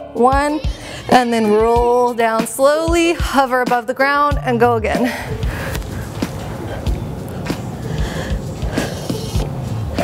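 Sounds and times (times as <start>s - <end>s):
workout music with low beat: 0.0s - 10.0s
person breathing hard through nose: 5.2s - 9.4s.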